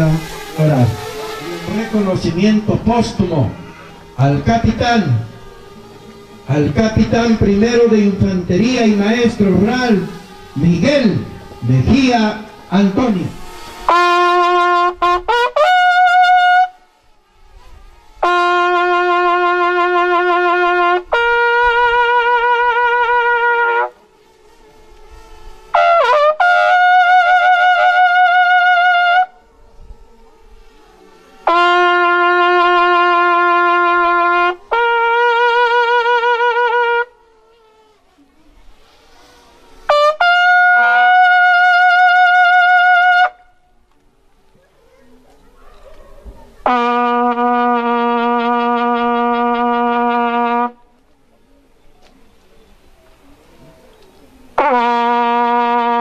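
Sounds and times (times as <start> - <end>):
bugle call: 0.0 - 17.0, 18.2 - 24.0, 25.7 - 29.4, 31.1 - 37.2, 39.8 - 43.7, 46.6 - 50.8, 54.6 - 56.0.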